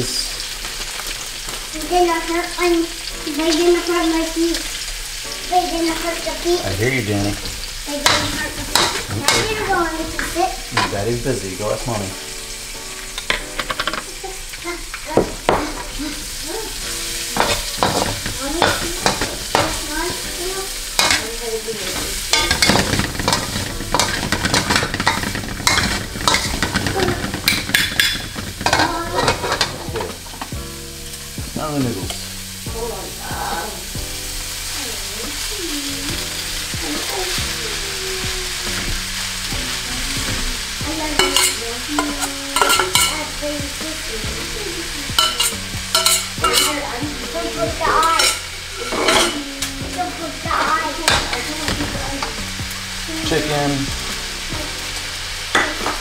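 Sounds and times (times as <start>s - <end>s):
vegetables sizzling in hot oil: 0.0s - 56.0s
metal spatula scraping a wok: 17.2s - 30.5s, 41.1s - 43.3s, 45.1s - 49.4s.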